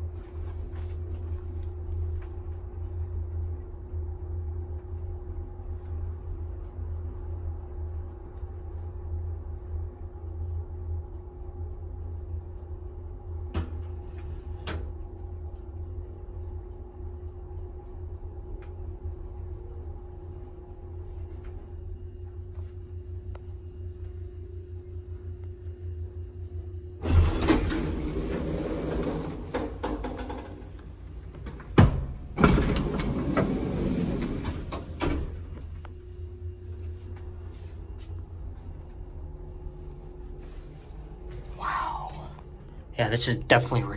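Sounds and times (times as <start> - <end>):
elevator motor hum: 0.0 - 43.9
elevator doors sliding rattle: 27.0 - 35.8.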